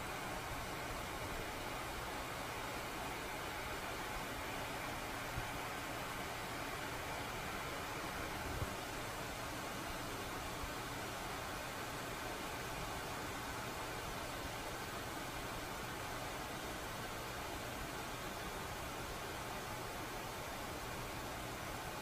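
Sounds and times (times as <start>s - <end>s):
background hiss: 0.0s - 22.0s.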